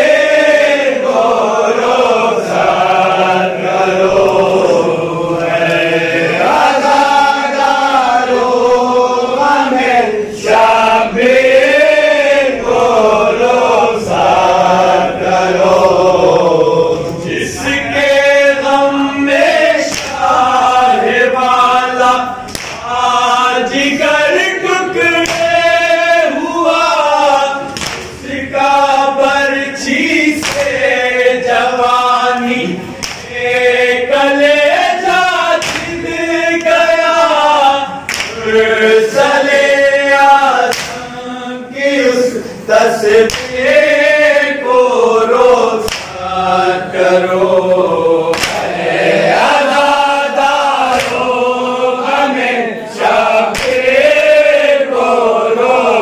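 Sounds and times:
men singing unaccompanied: 0.0s - 56.0s
chest-beating slaps: 19.8s - 20.4s, 22.4s - 23.0s, 25.2s - 25.7s, 27.6s - 28.3s, 30.4s - 31.0s, 32.4s - 33.4s, 35.5s - 36.8s, 38.1s - 38.4s, 40.6s - 41.1s, 43.2s - 43.6s, 45.8s - 46.2s, 48.3s - 48.8s, 50.9s - 51.3s, 53.5s - 54.0s.

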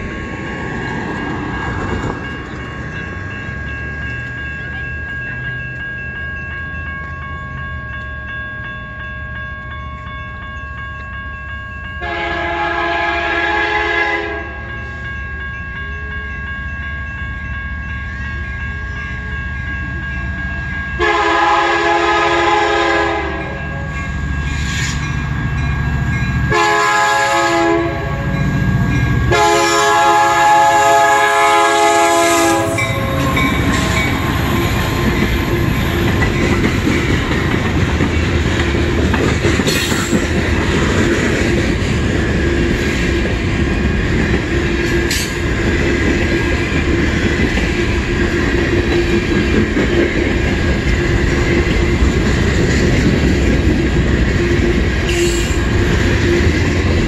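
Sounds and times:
crossing signal bells ringing: 0.0s - 57.0s
locomotive horn blasts: 12.0s - 14.7s, 21.0s - 23.9s, 26.5s - 28.4s, 29.3s - 34.0s
freight cars rumbling over rail joints: 31.8s - 57.0s.

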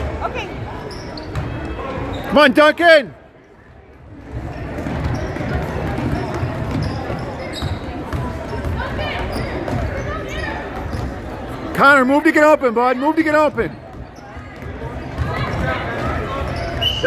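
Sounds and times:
crowd chatter: 0.0s - 17.0s
basketball bouncing on wooden floor: 4.2s - 11.2s, 13.8s - 16.8s.

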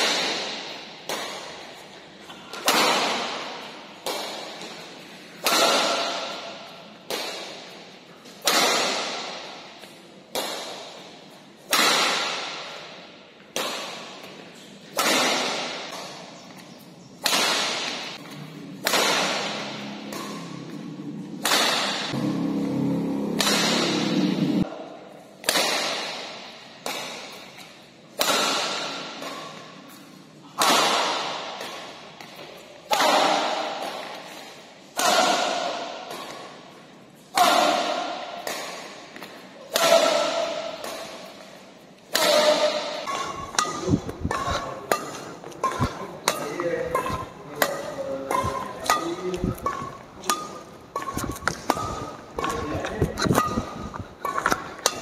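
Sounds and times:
racket hitting shuttlecock: 0.0s - 55.0s.

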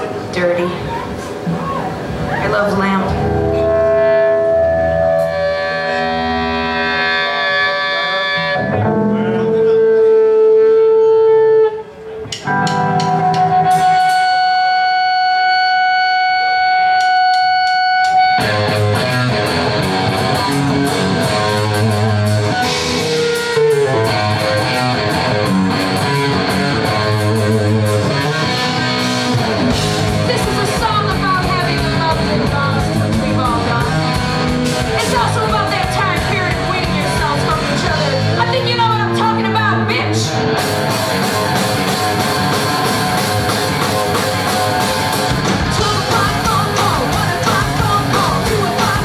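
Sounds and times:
electric guitar ringing chords: 0.0s - 49.0s
punk rock band with drums: 0.0s - 49.0s.

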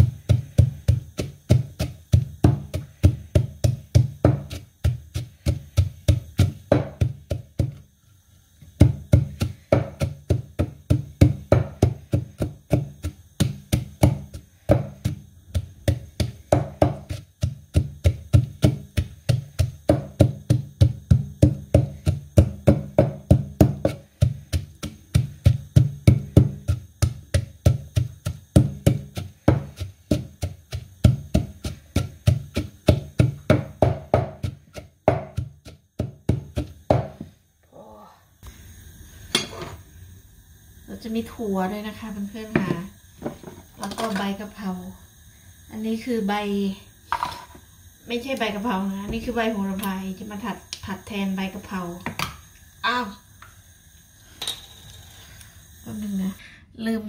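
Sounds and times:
pestle pounding in wooden mortar: 0.0s - 7.8s, 8.6s - 37.4s.

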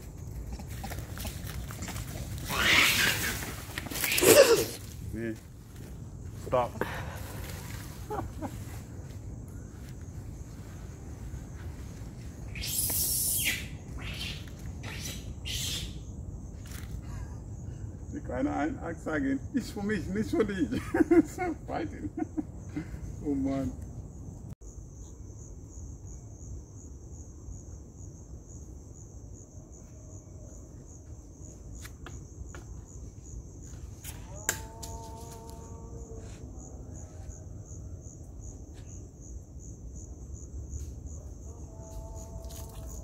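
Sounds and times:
insect trilling: 0.0s - 5.4s, 12.4s - 17.0s, 28.5s - 43.0s
monkeys shrieking: 2.4s - 4.8s, 12.5s - 16.0s.

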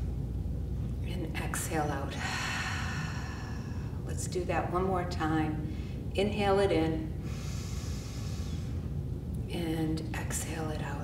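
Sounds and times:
low room hum: 0.0s - 11.0s
woman inhaling deeply: 2.2s - 4.0s, 7.2s - 8.8s.

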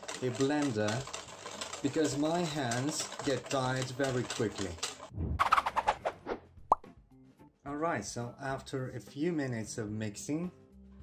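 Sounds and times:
quick rising plop tone: 5.1s - 6.9s.

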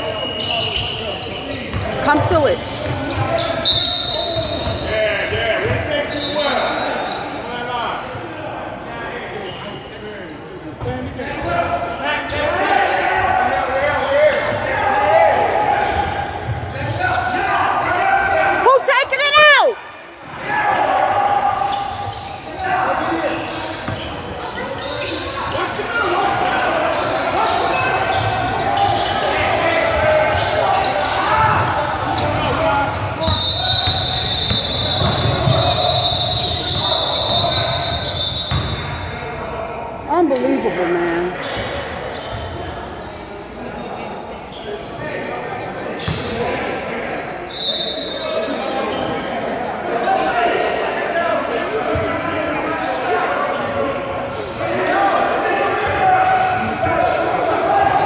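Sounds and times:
referee's whistle: 0.0s - 1.7s, 2.6s - 4.9s, 6.0s - 7.2s, 32.0s - 39.1s, 47.3s - 48.6s
people talking and calling out: 0.0s - 58.0s.

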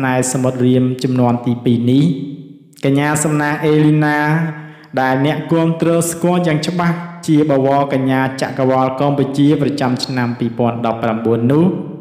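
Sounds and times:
man narrating in monotone: 0.0s - 2.2s, 2.8s - 12.0s.

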